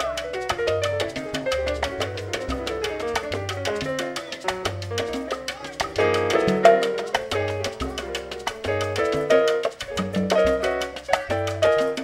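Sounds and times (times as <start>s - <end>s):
piano solo: 0.0s - 12.0s
salsa band playing: 0.0s - 12.0s.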